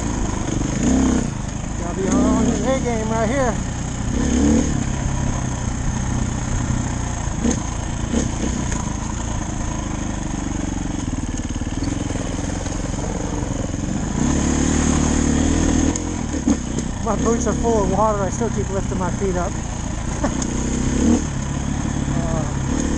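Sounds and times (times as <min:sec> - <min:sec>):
dirt bike engine: 0:00.0 - 0:22.9.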